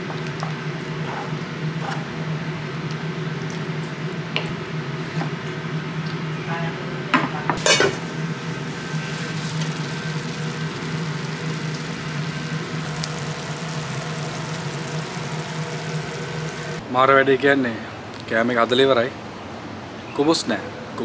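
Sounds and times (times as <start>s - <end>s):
gravy sizzling in a frying pan: 7.6s - 16.8s
steady low hum: 7.6s - 16.9s.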